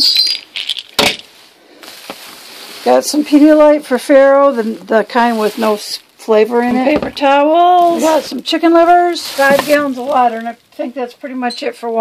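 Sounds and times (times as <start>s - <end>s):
plastic pill bottles handled: 0.0s - 3.5s, 4.5s - 10.8s
plastic bags rustling: 0.0s - 11.0s.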